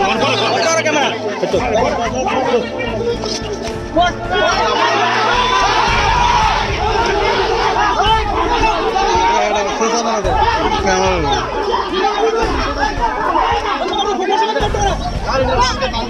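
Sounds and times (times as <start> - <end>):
crowd of men talking: 0.0 - 16.0.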